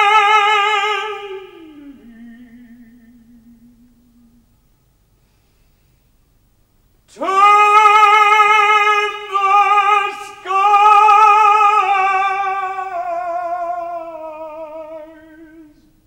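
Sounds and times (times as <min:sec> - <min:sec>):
tenor singing operatically: 0:00.0 - 0:04.3, 0:07.1 - 0:16.0.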